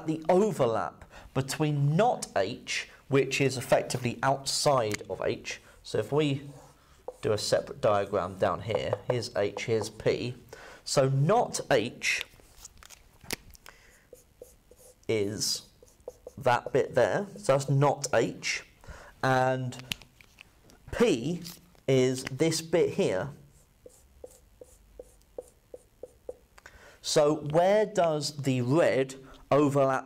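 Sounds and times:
marker squeaking on whiteboard: 6.5 - 10.0, 14.1 - 17.5, 23.5 - 26.5.

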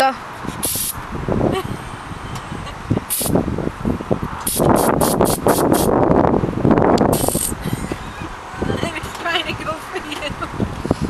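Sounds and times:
aerosol cans spraying: 0.6 - 1.0, 3.1 - 3.3, 4.5 - 5.9, 7.1 - 7.5.

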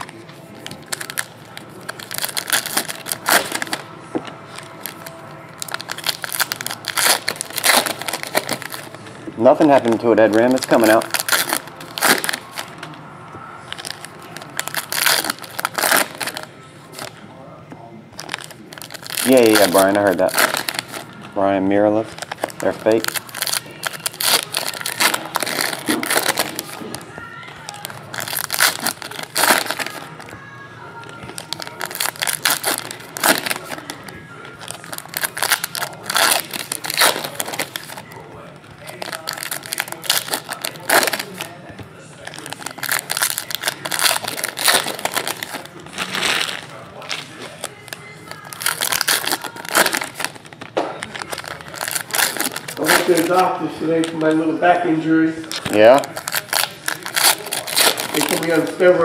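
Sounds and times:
packs torn open: 0.0 - 3.9, 4.5 - 9.0, 9.6 - 13.0, 13.7 - 17.2, 18.2 - 21.2, 22.1 - 30.4, 31.1 - 41.6, 42.2 - 54.3, 55.4 - 59.0
foil wrappers crinkling and tearing: 0.0 - 13.0, 13.7 - 17.2, 18.1 - 30.4, 31.0 - 41.6, 42.2 - 59.0.

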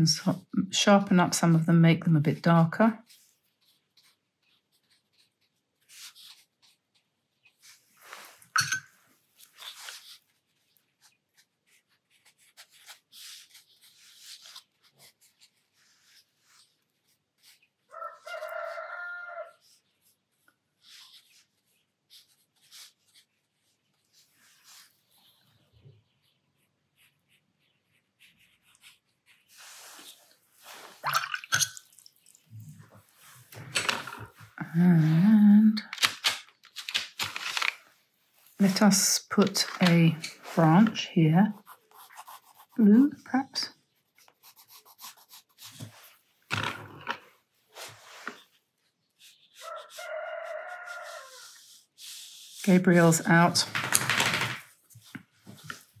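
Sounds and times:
rooster crowing: 17.9 - 19.6, 49.6 - 51.4
paintbrush taps and rustles: 54.9 - 56.0.

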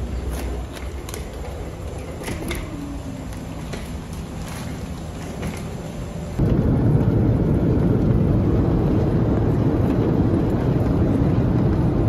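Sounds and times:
airliner cabin engine rumble: 0.0 - 12.0.

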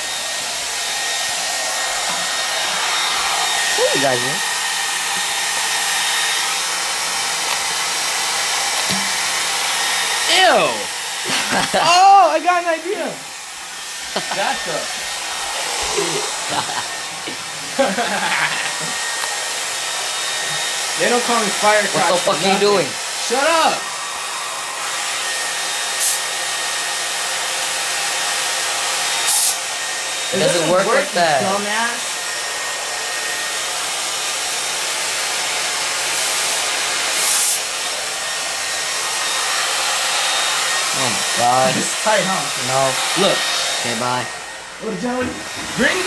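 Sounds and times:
hair dryer running: 0.0 - 46.0
sharp hiss: 26.0 - 26.2, 29.2 - 29.6, 36.2 - 37.6.

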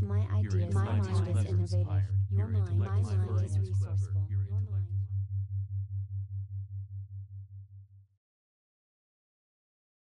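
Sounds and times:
layered voices speaking: 0.0 - 4.9
low pulsing electronic tone: 0.0 - 8.2.

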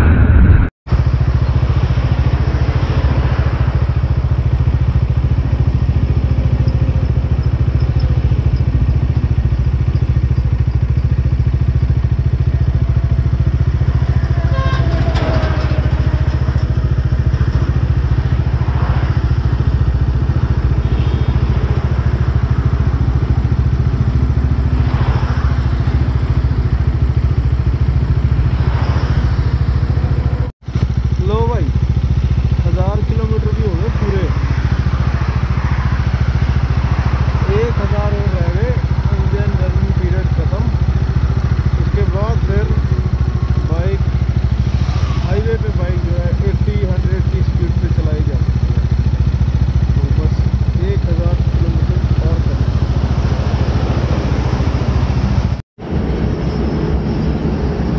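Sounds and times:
motorcycle engine running: 0.0 - 57.9.

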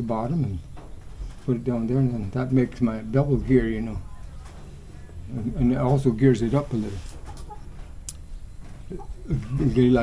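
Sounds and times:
chicken clucking: 7.3 - 7.8.

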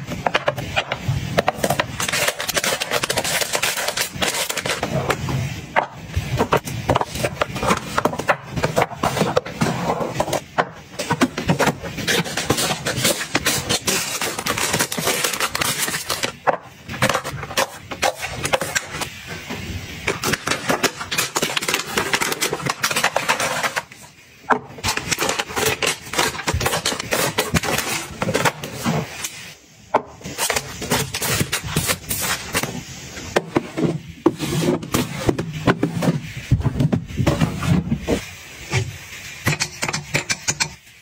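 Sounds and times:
plastic packets crinkling: 11.0 - 19.2.

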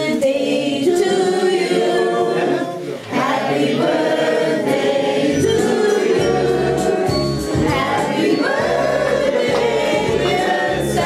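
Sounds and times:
group singing in chorus: 0.0 - 11.0.

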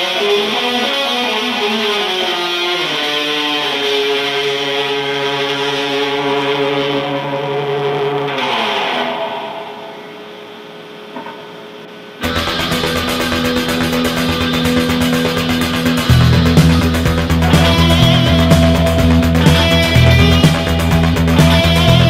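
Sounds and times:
rock backing track with drums: 0.0 - 11.6, 12.2 - 22.0
electric guitar chord through amp: 0.0 - 22.0.

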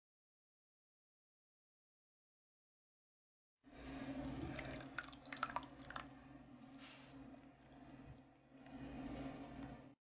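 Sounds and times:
low steady hum: 3.7 - 10.0
sauce dripping into pan: 4.2 - 6.6.

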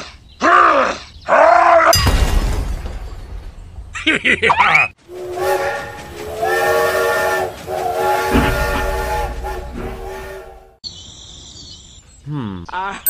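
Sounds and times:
steam train whistle: 5.1 - 10.8.

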